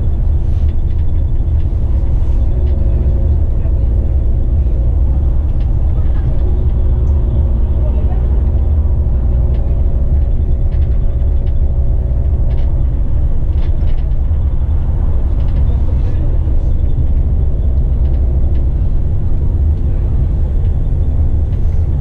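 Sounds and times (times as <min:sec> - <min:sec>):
bus engine and tyre rumble: 0:00.0 - 0:22.0
faint steady engine tones: 0:00.0 - 0:22.0.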